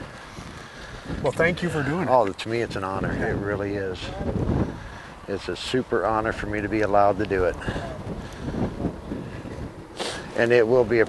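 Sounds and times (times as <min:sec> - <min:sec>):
wind rumbling across microphone: 0:00.0 - 0:11.0.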